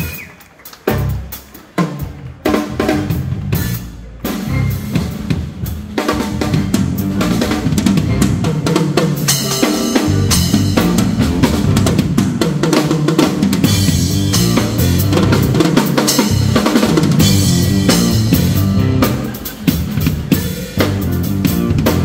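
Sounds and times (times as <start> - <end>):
drum kit solo: 0.0 - 22.0
bass line: 2.5 - 22.0.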